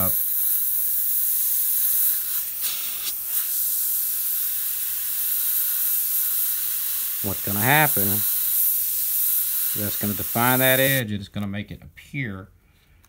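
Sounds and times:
airbrush spraying paint: 0.0s - 11.0s.

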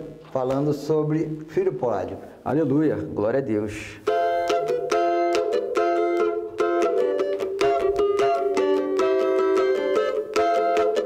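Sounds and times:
cavaquinho strummed in samba rhythm: 4.0s - 11.0s.

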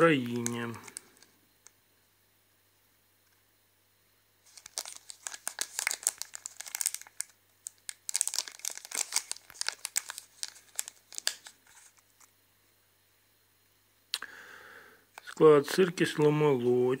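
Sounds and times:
plastic wrapper crinkling: 0.0s - 1.3s, 4.4s - 12.3s, 15.2s - 15.4s.

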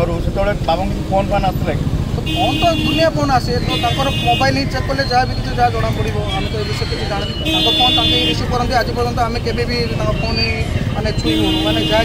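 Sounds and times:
man talking: 0.0s - 12.0s
traffic noise: 0.0s - 12.0s
vehicle horn: 2.2s - 4.6s, 7.4s - 8.6s, 11.2s - 12.0s.

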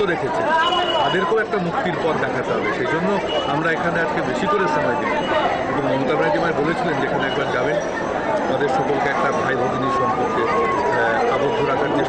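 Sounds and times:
man talking: 0.0s - 7.8s, 8.4s - 12.0s
crowd chattering: 0.0s - 12.0s.

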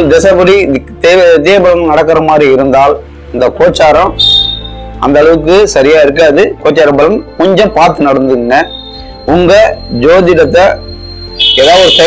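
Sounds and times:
background music: 0.0s - 12.0s
thin high tone: 4.0s - 12.0s
man speaking: 11.5s - 12.0s.

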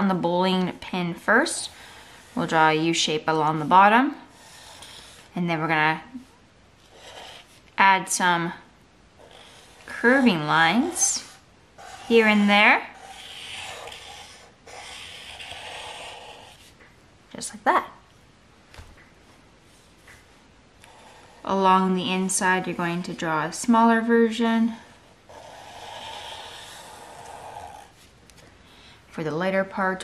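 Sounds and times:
marker rubbing across paper: 0.7s - 8.4s, 9.2s - 16.8s, 20.8s - 24.0s, 24.7s - 28.1s.

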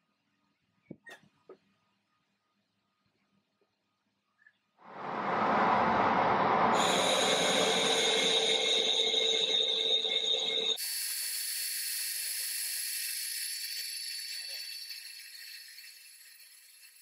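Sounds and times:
steady machine tones: 4.9s - 10.8s
metal lathe cutting hiss: 4.9s - 16.9s.

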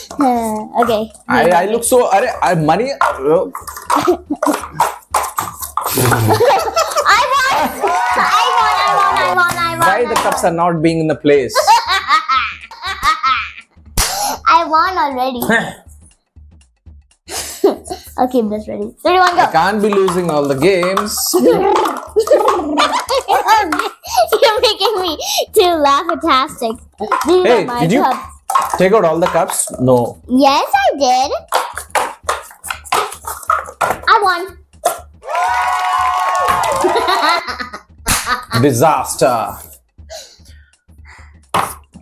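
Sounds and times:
paper cups clacking and scraping: 0.0s - 10.5s, 19.2s - 25.2s, 26.0s - 30.2s, 31.4s - 35.2s
young girl laughing: 6.0s - 7.8s, 11.6s - 13.6s, 21.4s - 25.6s, 36.8s - 38.6s.

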